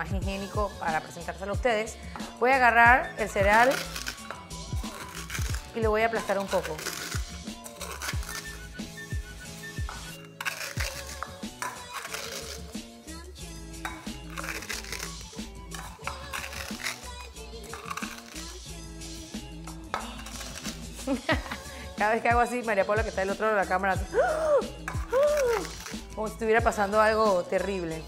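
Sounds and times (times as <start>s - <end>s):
background music with bass beat: 0.0s - 6.1s, 6.8s - 11.8s, 12.4s - 28.0s
cereal crunching in a bowl: 3.2s - 8.6s, 9.9s - 12.8s, 13.9s - 18.7s, 19.9s - 21.0s, 24.9s - 26.2s.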